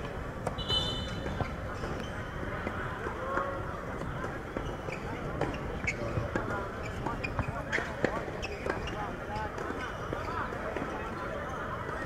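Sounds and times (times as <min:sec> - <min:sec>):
tennis ball bouncing on court: 0:00.0 - 0:11.0
faint voices: 0:00.0 - 0:12.0.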